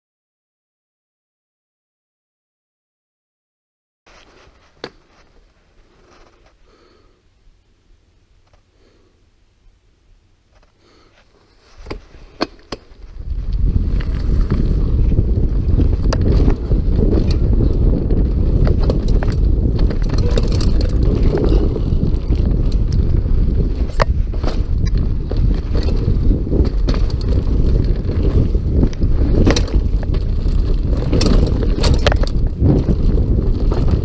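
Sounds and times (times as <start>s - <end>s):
bike tyres rumbling on dirt: 10.5s - 34.0s
wind buffeting microphone: 13.0s - 34.0s
faint rattle: 18.5s - 33.1s.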